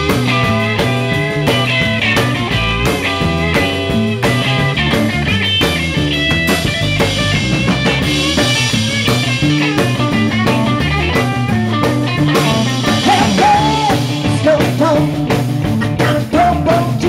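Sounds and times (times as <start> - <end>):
drum kit: 0.0 - 17.0
electric bass: 0.0 - 17.0
electric guitar lead lines: 0.0 - 17.0.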